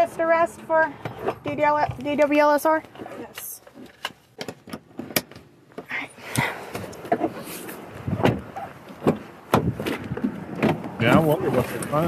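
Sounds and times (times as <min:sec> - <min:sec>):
clicks knocks and clunks: 0:08.2 - 0:11.2.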